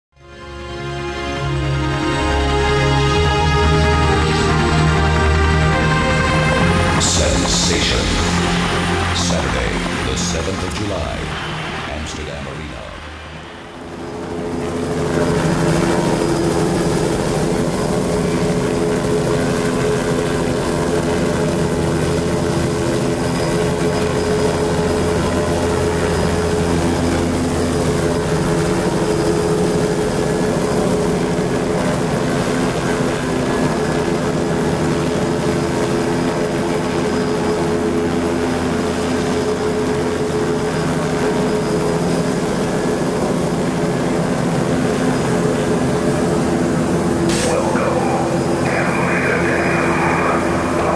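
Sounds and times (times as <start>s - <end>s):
electronic drone of low tones: 0.8s - 29.2s, 29.9s - 50.9s.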